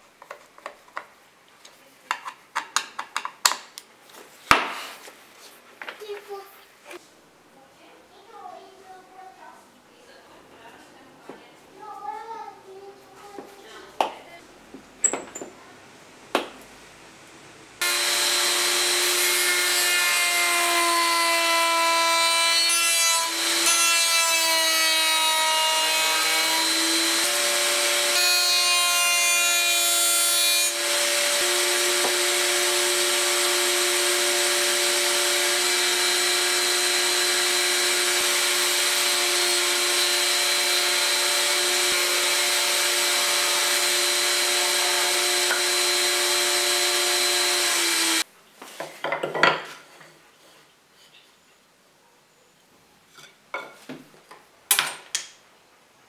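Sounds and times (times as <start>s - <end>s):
router whining: 17.8s - 20.4s, 25.8s - 28.2s, 30.7s - 48.2s.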